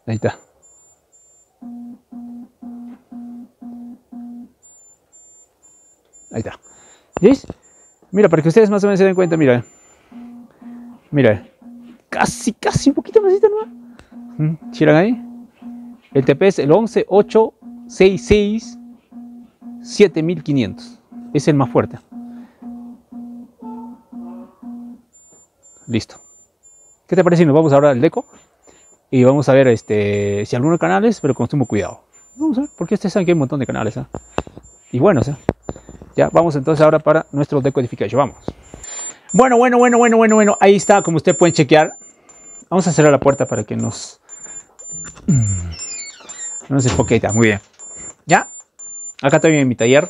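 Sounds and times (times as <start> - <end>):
faint high-pitched beeping: 0.0 - 50.0
low buzzing beeps: 0.2 - 11.0, 13.2 - 50.0.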